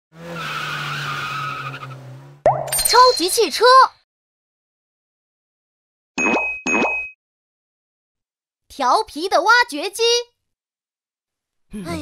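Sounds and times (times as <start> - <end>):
cartoon tyre screech: 0.2 - 2.4.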